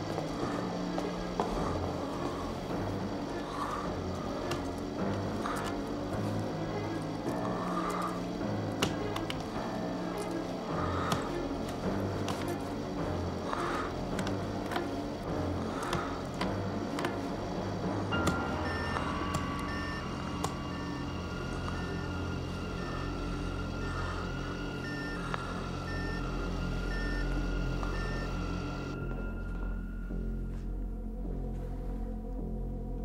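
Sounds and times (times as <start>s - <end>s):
dark synthesizer score: 0.0s - 33.0s
steady high tone: 18.1s - 30.4s.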